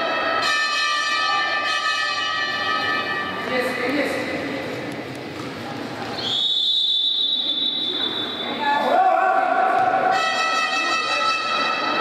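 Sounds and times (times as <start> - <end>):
whistle blast: 6.2 - 8.6.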